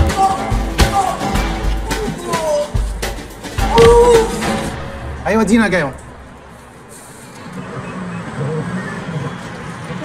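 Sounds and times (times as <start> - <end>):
traffic noise: 3.8 - 10.0.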